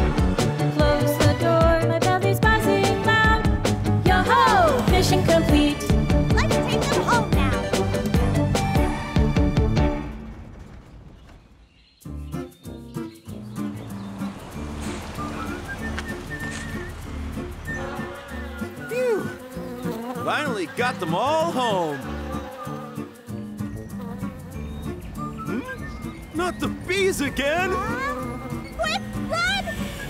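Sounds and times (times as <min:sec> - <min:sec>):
cartoon background music: 0:00.0 - 0:10.2, 0:12.0 - 0:30.0
bee buzzing effect: 0:13.6 - 0:30.0.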